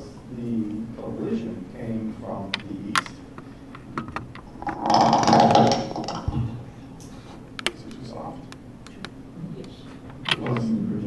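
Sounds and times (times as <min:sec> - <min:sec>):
lapel microphone handling clicks: 0:07.0 - 0:10.6.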